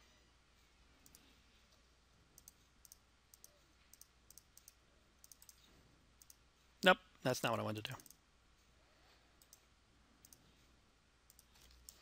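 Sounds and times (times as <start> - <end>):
faint computer mouse clicks: 1.0 - 1.3, 2.4 - 6.4, 9.4 - 10.4, 11.3 - 12.0.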